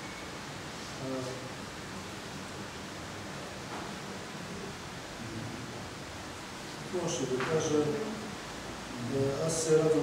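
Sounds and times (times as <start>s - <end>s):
steady recording hiss: 0.0s - 10.0s.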